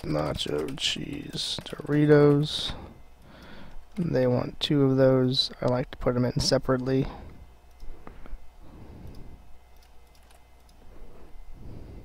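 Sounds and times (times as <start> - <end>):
keyboard typing: 0.0 - 2.6, 9.8 - 10.8
low steady hum: 0.0 - 12.0
computer mouse clicks: 9.0 - 10.8.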